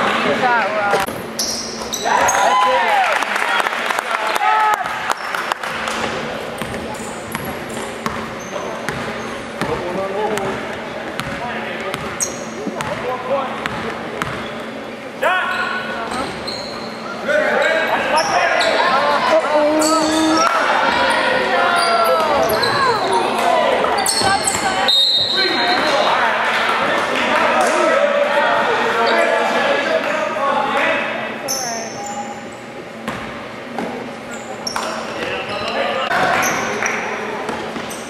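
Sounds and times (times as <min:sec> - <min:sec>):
voices echoing in gym: 0:00.0 - 0:38.0.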